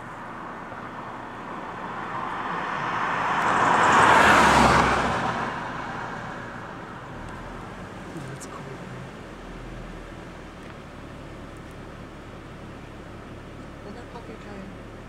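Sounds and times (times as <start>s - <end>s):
car passing by: 0.0s - 9.1s.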